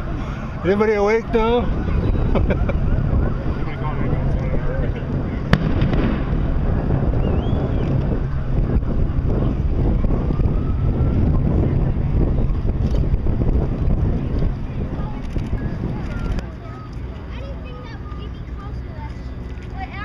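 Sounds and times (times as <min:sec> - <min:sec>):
faint voices: 0:00.0 - 0:20.0
wind buffeting microphone: 0:00.0 - 0:20.0.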